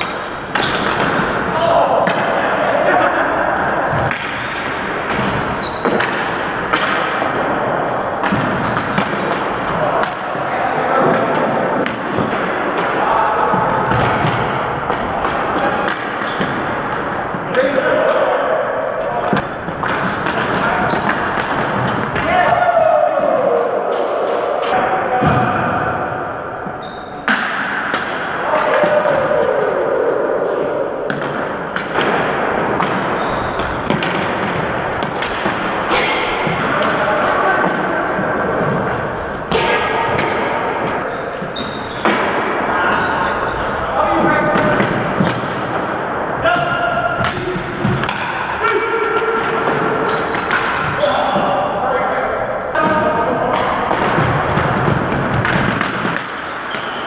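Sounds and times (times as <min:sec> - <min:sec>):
players shouting: 0:00.0 - 0:57.0.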